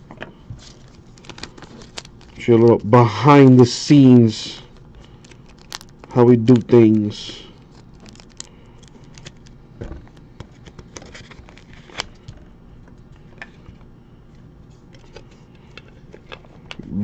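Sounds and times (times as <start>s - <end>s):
hands handling plastic card sleeves: 0.6s - 2.4s, 4.7s - 12.4s.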